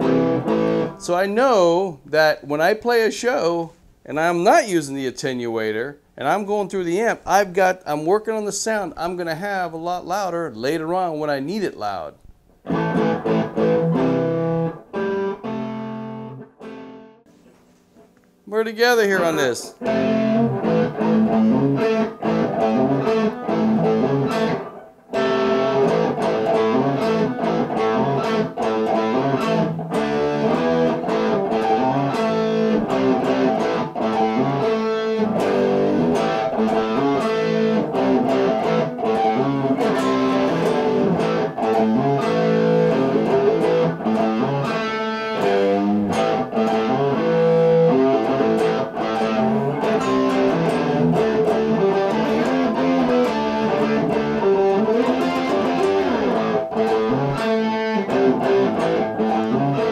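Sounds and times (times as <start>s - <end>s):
overdriven electric guitar: 0.0s - 1.2s, 12.6s - 18.3s, 19.0s - 59.9s.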